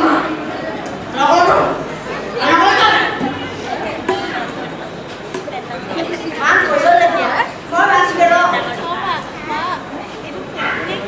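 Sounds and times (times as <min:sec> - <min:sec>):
voices talking: 0:00.0 - 0:11.0.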